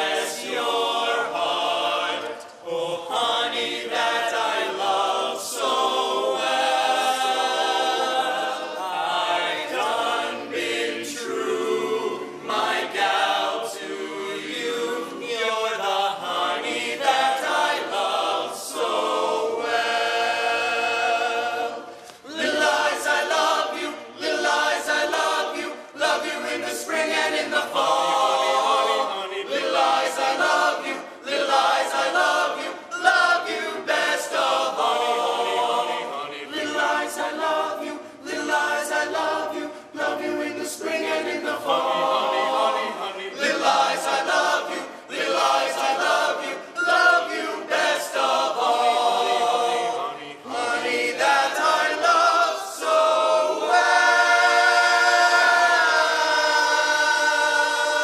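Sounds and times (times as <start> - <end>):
men singing in close harmony: 0.0 - 58.0.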